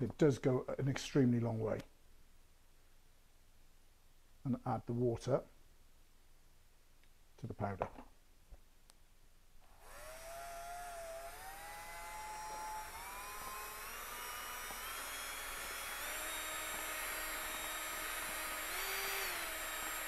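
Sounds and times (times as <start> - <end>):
cordless drill motor whine: 9.7 - 20.0.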